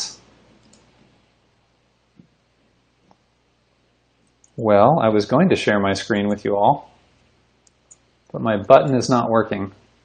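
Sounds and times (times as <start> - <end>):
computer mouse clicks: 0.6 - 1.0, 4.2 - 4.6, 7.6 - 8.1.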